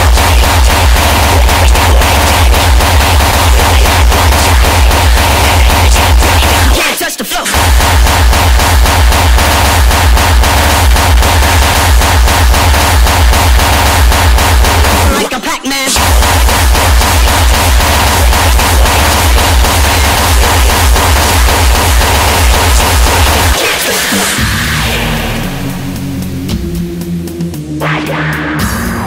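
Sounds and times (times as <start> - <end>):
pounding kick drum: 0.0 - 6.8, 7.5 - 15.2, 16.0 - 29.0
hardcore electronic music: 0.0 - 29.0.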